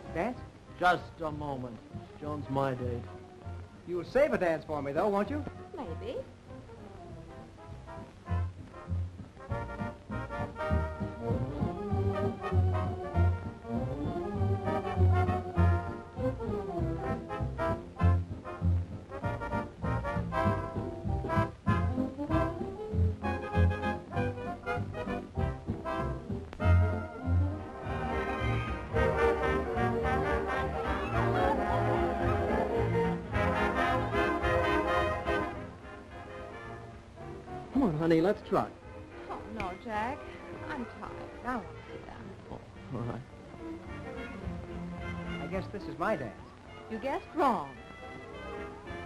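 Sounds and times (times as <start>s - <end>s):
dance band music with brass: 6.8s - 37.6s, 43.5s - 49.0s.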